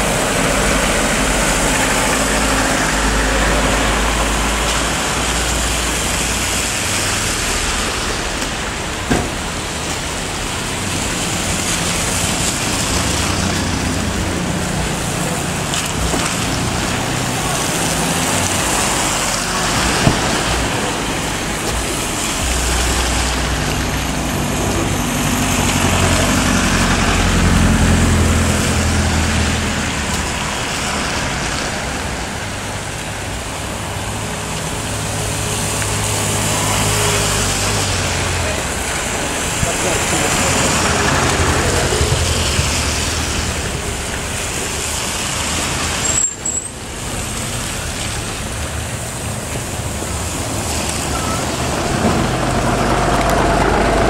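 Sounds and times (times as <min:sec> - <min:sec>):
tyre hiss on wet road: 0:00.0 - 0:54.0
vehicle engine humming: 0:00.0 - 0:54.0
vehicles driving past: 0:00.0 - 0:54.0.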